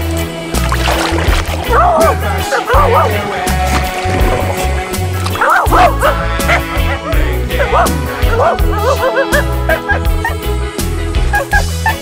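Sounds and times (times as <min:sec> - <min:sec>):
music with bass beat: 0:00.0 - 0:12.0.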